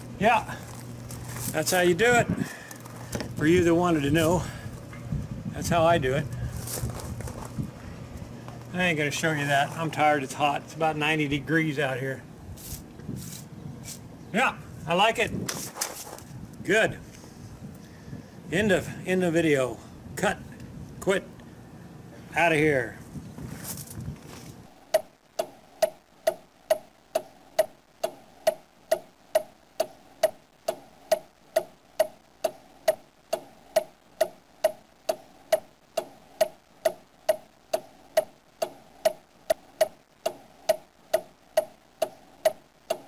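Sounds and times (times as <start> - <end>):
clock ticking: 24.9 - 43.0.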